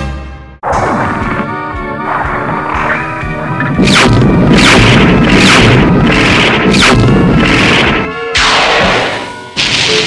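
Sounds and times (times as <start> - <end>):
music: 0.0 - 10.0
dense rumble: 0.6 - 7.5
battle booms: 0.6 - 9.2.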